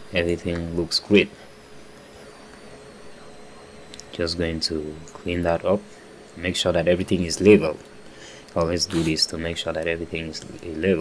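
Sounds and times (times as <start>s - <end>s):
thin steady hum: 0.0s - 11.0s.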